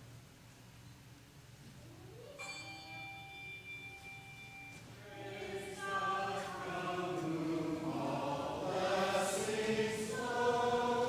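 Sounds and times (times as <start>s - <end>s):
sustained musical chord: 1.9s - 11.0s.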